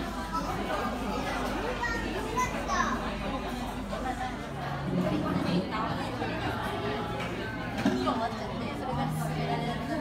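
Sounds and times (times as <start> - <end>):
children's voices: 0.0 - 3.4
diners chattering: 0.0 - 10.0.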